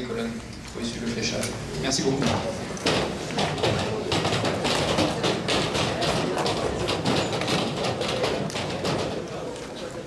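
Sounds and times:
taps and thumps of objects: 2.2 - 9.3.

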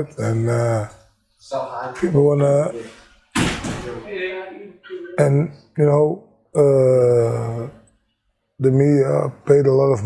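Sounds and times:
sudden thud: 3.3 - 4.0.

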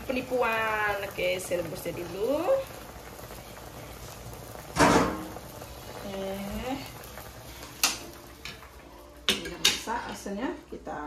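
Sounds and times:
water boiling hard: 0.0 - 10.4.

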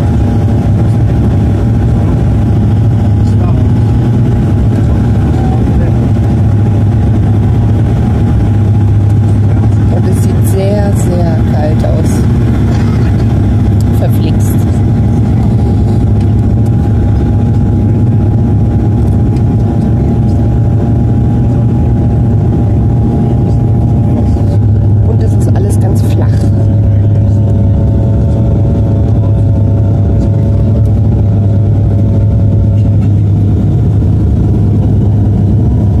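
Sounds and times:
turboprop engine drone in cabin: 0.0 - 36.0.

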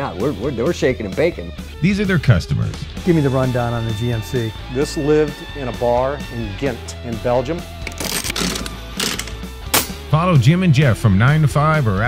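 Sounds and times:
background music: 0.0 - 12.0
rapid mechanical clicking and rattling: 7.9 - 9.5.

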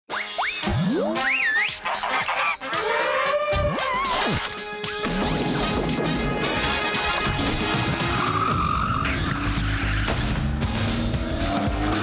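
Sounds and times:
cartoon whistle glides: 0.1 - 1.8.

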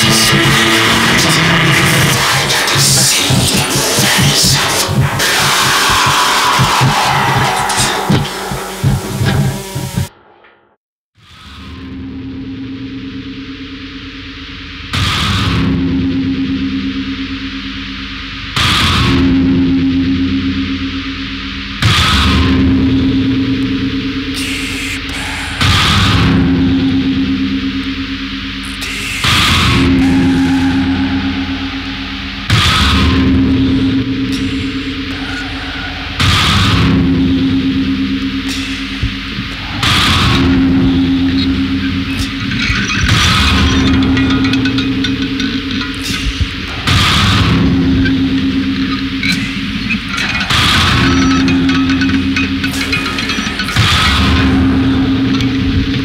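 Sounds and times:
steady low drone: 0.0 - 10.2, 11.5 - 56.0
distorted noise music: 0.0 - 56.0
hissing high noise surges: 24.1 - 56.0.

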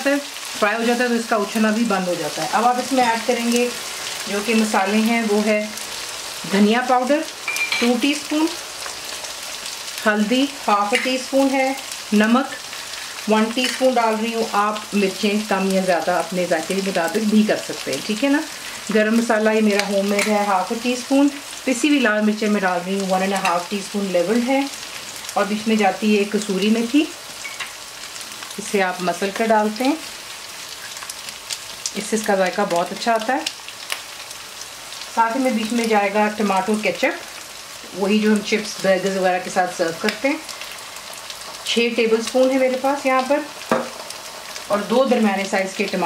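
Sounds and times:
masala sizzling in hot oil: 0.0 - 46.0
light crackles: 32.8 - 35.2.

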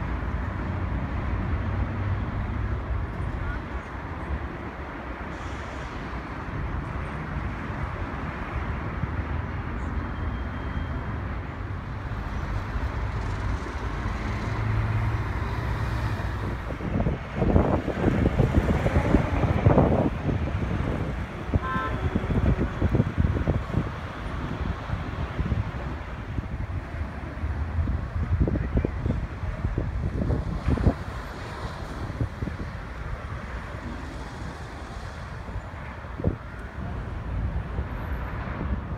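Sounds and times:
traffic rumble: 0.0 - 38.9.

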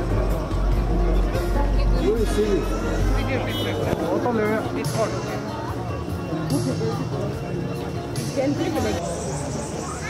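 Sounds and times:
people talking: 1.0 - 10.0.

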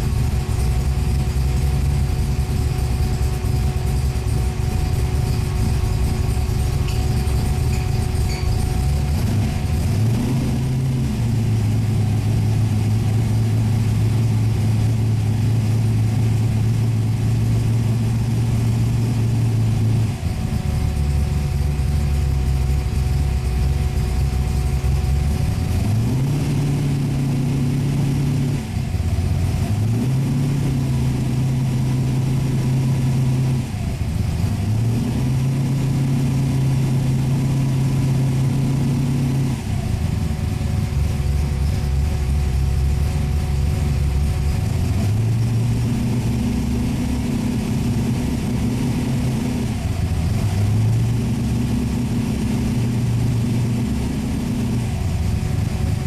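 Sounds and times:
car engine revving up and down: 0.0 - 56.0.

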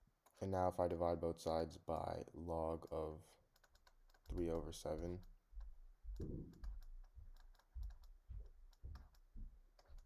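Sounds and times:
stylus tapping on drawing tablet: 3.6 - 10.0.

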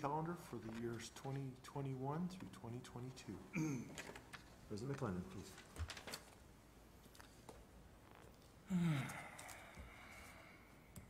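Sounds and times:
man sighing: 8.7 - 10.2.

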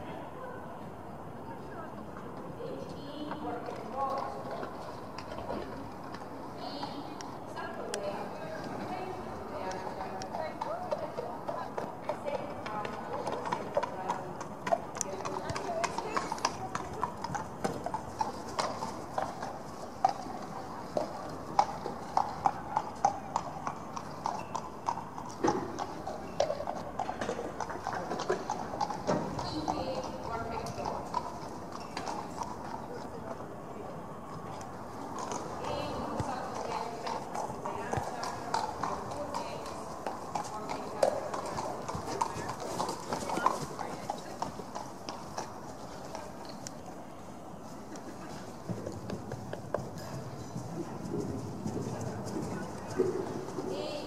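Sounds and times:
horse trotting on sand: 3.0 - 33.4, 34.3 - 46.7, 47.6 - 54.0.

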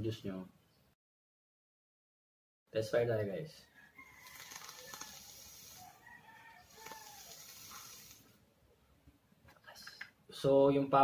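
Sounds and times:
breathy exhale hiss: 6.7 - 8.3.

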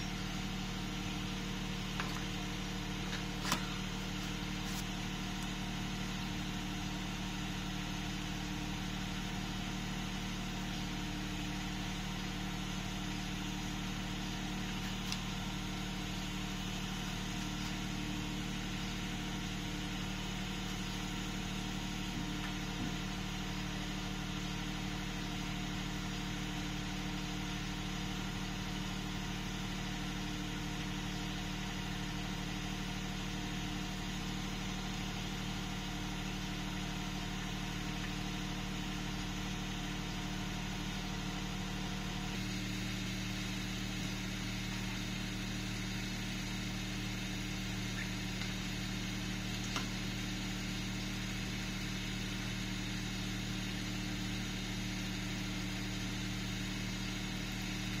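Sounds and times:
low mechanical hum: 0.0 - 58.0.

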